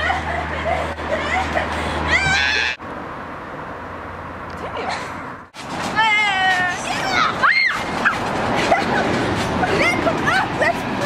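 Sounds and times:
girls calling out excitedly: 1.1s - 2.8s, 6.0s - 8.3s.

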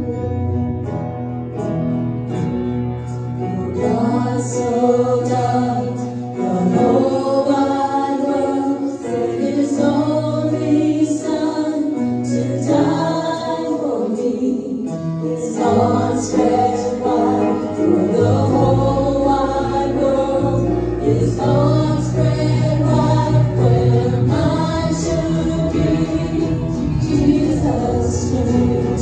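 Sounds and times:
bass: 0.0s - 8.1s, 15.3s - 29.0s
acoustic guitar: 0.0s - 29.0s
piano: 0.0s - 29.0s
choir singing gospel song: 3.6s - 29.0s.

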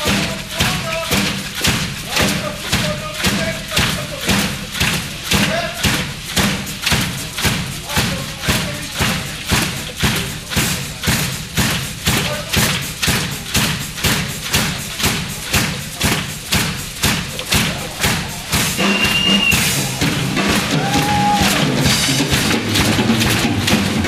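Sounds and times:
drum kit beat: 0.0s - 24.0s.

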